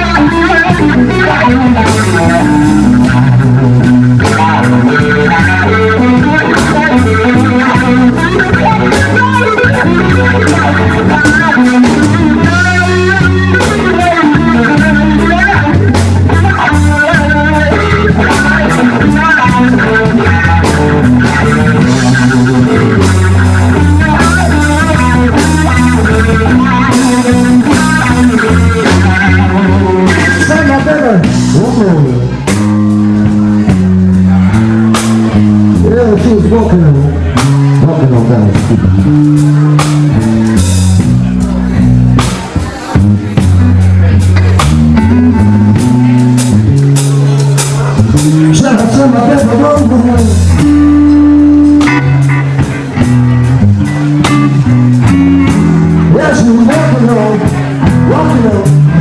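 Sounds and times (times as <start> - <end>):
bass guitar: 0.0 - 59.0
drums: 0.0 - 59.0
electric guitar lead line: 0.0 - 59.0.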